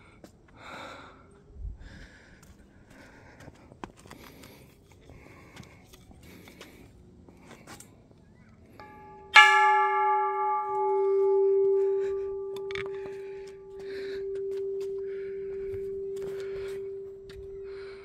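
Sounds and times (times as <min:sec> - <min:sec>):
low bell hum: 0:08.8 - 0:18.0
temple bell clang: 0:08.8 - 0:18.0.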